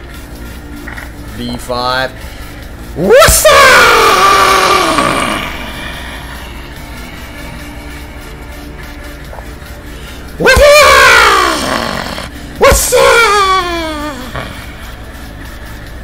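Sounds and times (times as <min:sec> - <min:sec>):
quiet music: 0:00.0 - 0:16.0
man yelling: 0:03.0 - 0:05.6, 0:10.4 - 0:14.5.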